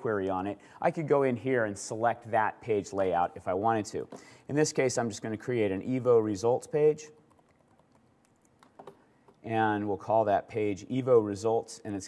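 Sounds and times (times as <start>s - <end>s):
typing on computer keyboard: 7.2s - 9.0s.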